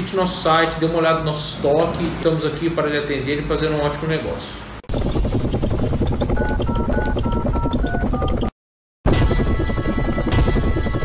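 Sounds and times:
helicopter rotor chopping: 4.8 - 8.5, 9.1 - 11.0.

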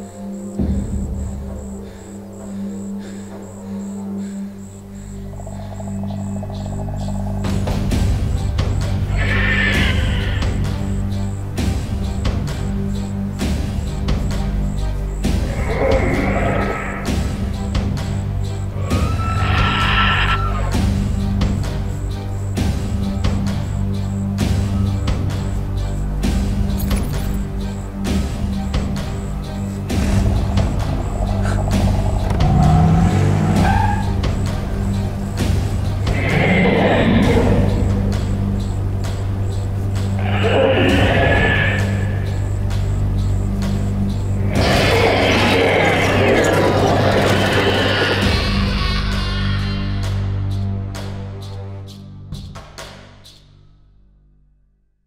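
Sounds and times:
low dense drone: 0.0 - 50.7
car engine revving: 28.7 - 38.6.

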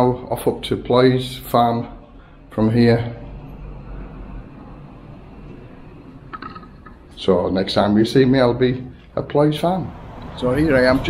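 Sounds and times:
low rumble of background noise: 0.0 - 11.0.

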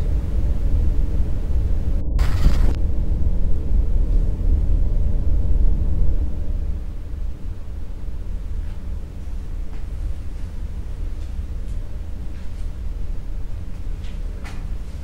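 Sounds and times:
deep low rumble: 0.0 - 14.0
short burst of noise: 2.2 - 2.8.

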